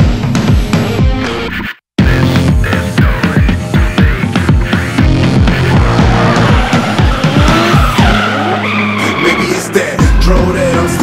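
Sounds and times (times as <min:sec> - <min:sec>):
electronic music bass hits: 0:02.0 - 0:08.2
car engine running: 0:02.0 - 0:09.0
tyres skidding: 0:02.6 - 0:11.0.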